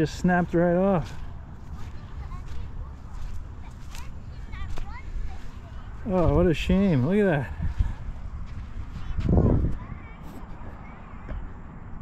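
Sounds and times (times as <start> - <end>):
footsteps on sand: 0.0 - 11.3
wind buffeting microphone: 0.0 - 12.0.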